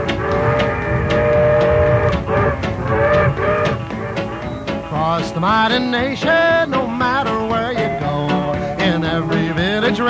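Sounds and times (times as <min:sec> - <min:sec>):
rockabilly band music: 0:00.0 - 0:10.0.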